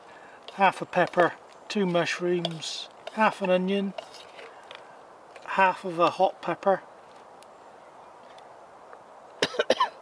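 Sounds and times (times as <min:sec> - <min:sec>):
man coughing: 0:09.4 - 0:10.0.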